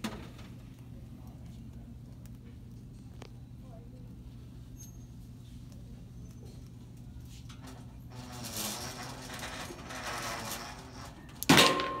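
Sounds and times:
bird rustling and scraping: 7.3 - 11.3.

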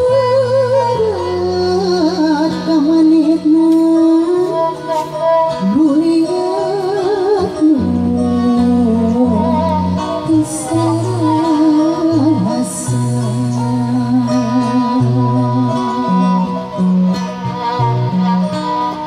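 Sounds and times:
violin: 0.0 - 19.0
woman singing ornamented vocal line: 0.0 - 19.0
zithers plucking: 0.0 - 19.0.

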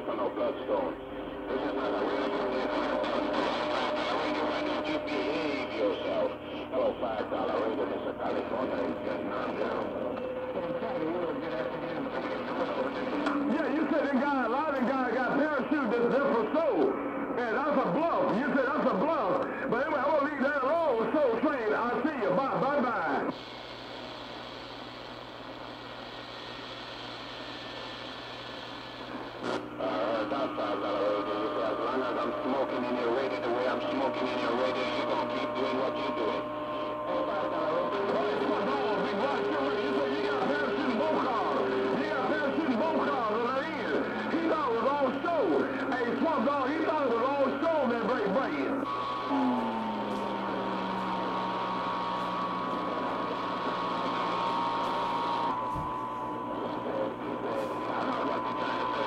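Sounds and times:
garbled radio voices: 0.0 - 23.3, 29.0 - 59.0
radio hiss: 0.0 - 59.0
radio static: 0.0 - 59.0.

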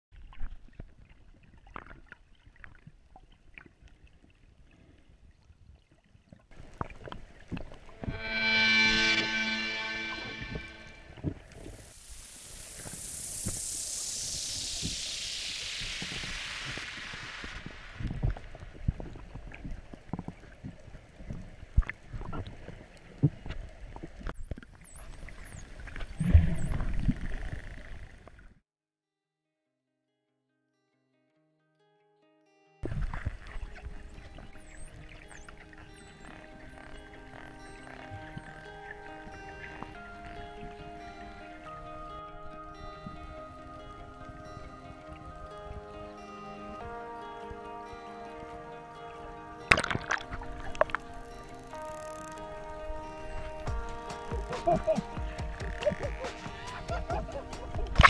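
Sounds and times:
underwater ambience: 5.8 - 28.5, 32.8 - 58.0
held chord: 7.9 - 11.2, 36.1 - 55.6
long falling whoosh: 7.9 - 11.3
high arching whistles: 8.0 - 11.1
crackling clicks: 49.7 - 52.6.

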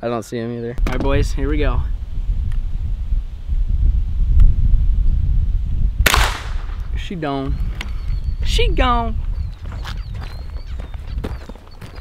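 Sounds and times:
wind buffeting microphone: 0.8 - 12.0
rifle shot: 6.0 - 6.8.

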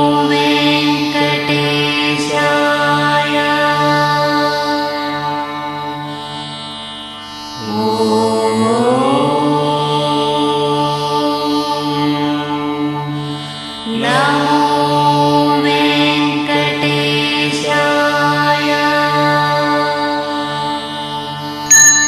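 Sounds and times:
chant-like devotional melody: 0.0 - 22.0.

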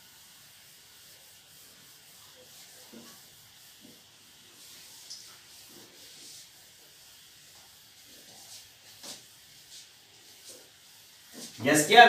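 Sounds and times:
duster rubbing on whiteboard: 0.0 - 12.0.

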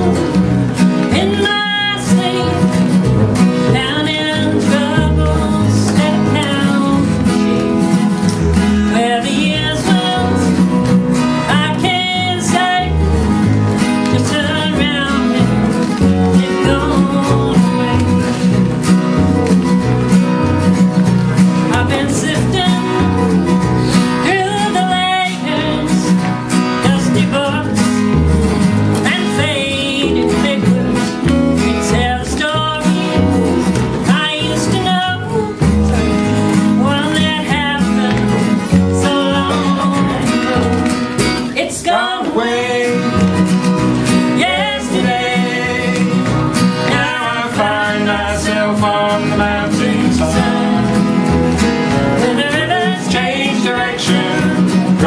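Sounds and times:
woman singing: 0.0 - 2.9, 3.6 - 7.6, 8.8 - 10.7, 11.4 - 13.4, 14.0 - 18.1, 21.7 - 23.4, 24.2 - 28.0, 29.0 - 33.5, 34.1 - 40.8, 41.4 - 43.3, 44.3 - 46.2, 46.9 - 51.1, 52.2 - 55.0
strummed acoustic guitars: 0.0 - 55.0
upright double bass: 0.0 - 55.0.

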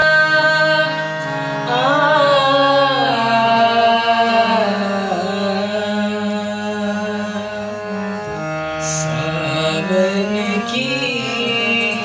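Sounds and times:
girl and boy singing: 0.0 - 7.7
harmonium: 0.0 - 12.0.

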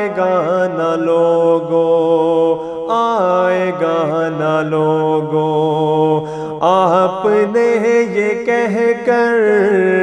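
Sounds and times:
man singing a cappella: 0.0 - 10.0.

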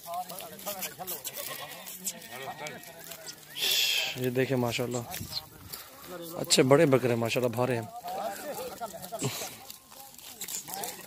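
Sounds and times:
goats bleating: 0.1 - 11.0.

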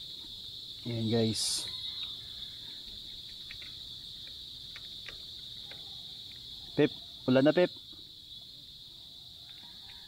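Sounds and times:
insect chorus: 0.0 - 10.0.

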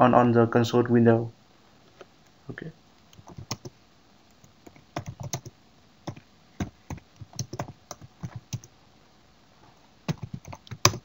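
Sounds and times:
computer keyboard typing: 3.1 - 3.7, 4.3 - 8.7, 10.1 - 11.0.

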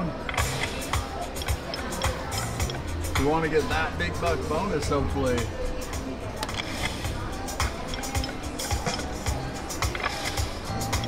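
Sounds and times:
slot machine game music: 0.0 - 5.4, 6.3 - 11.0
busy casino background: 0.0 - 11.0
slot machine spin sounds: 0.2 - 3.0.

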